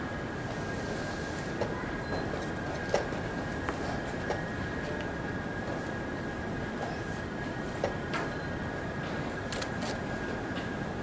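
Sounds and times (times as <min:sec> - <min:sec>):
hum of a large hall: 0:00.0 - 0:11.0.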